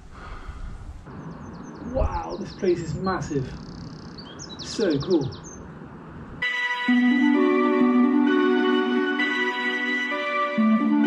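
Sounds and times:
small bird singing: 1.1 - 5.7.

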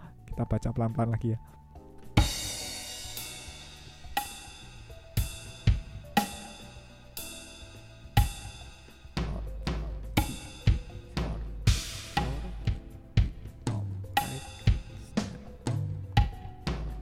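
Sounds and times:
bass drum hits: 2.2 - 17.0
cymbal strikes ringing: 11.7 - 12.8.

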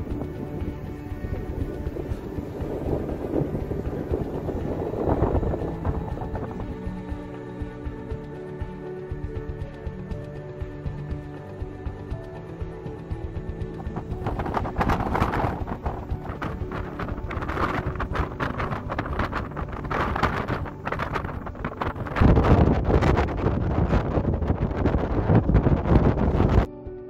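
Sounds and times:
wind buffeting microphone: 0.0 - 7.3, 13.4 - 26.7
music: 0.0 - 27.0.

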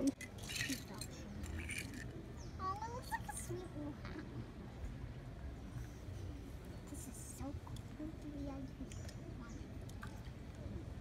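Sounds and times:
light clinks of small objects: 0.0 - 2.2.

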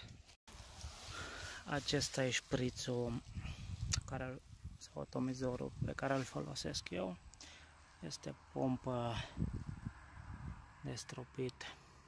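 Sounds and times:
man speaking: 1.6 - 3.3, 3.9 - 7.2, 8.0 - 9.4, 10.8 - 11.8.

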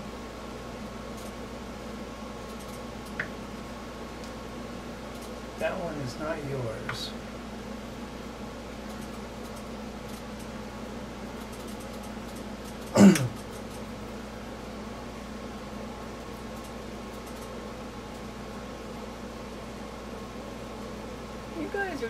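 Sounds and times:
steady mechanical hum: 0.0 - 22.0.

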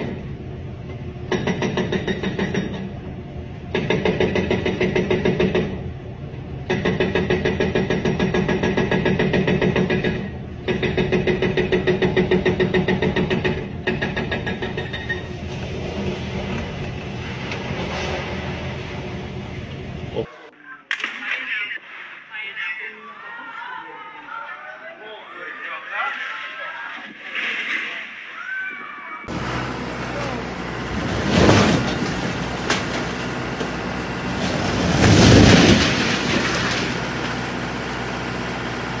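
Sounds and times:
excavator clattering: 0.0 - 3.1, 3.7 - 5.8, 6.6 - 19.0, 29.3 - 39.0
masonry rumbling and collapsing: 6.6 - 20.1, 29.3 - 39.0.

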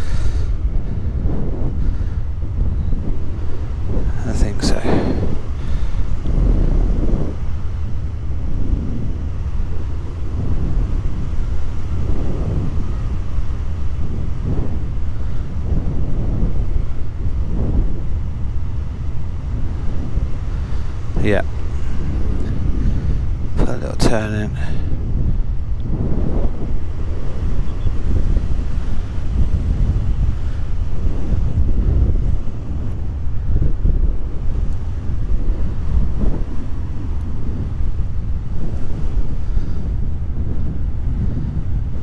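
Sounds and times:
wind rushing over microphone: 0.0 - 42.0.

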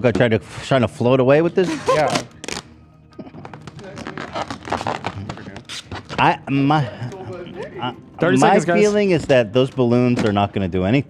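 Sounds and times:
rustling of craft materials: 3.2 - 6.4.

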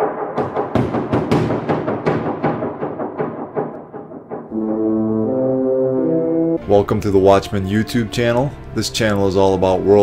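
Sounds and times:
ram's horn long note: 4.5 - 6.9.

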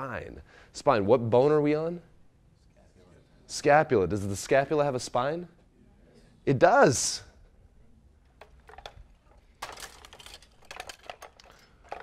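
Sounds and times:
handling rustles: 8.3 - 12.0.

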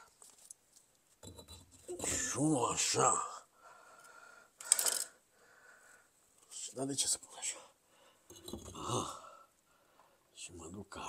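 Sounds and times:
hard objects clattering: 4.6 - 5.1, 8.3 - 8.9.

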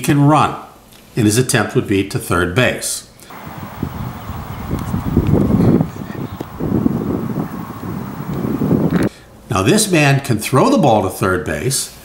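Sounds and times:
wind rumbling on microphone: 3.3 - 9.1.

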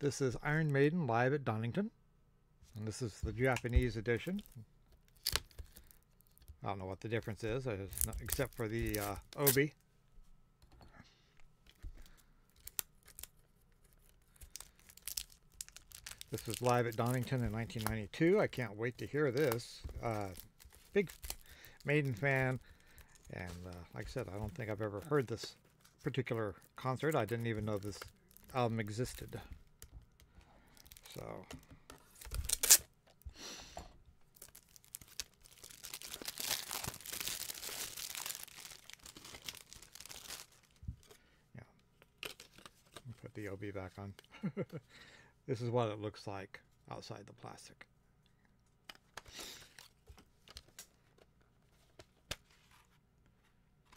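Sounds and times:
plastic packaging crinkling: 7.2 - 9.7, 11.7 - 32.9, 34.2 - 41.2.

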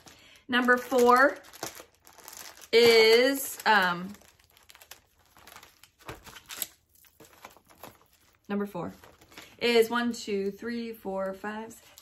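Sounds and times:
paper rustling and crinkling: 0.0 - 9.6.

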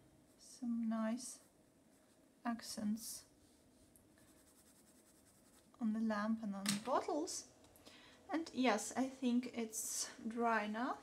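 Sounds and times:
woman speaking: 0.4 - 1.5, 2.5 - 3.3, 5.8 - 7.5, 8.3 - 11.0.

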